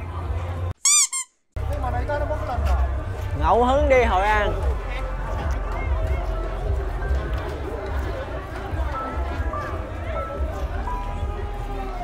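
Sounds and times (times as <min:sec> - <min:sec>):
cartoon squeak sound effect: 0:00.8 - 0:01.4.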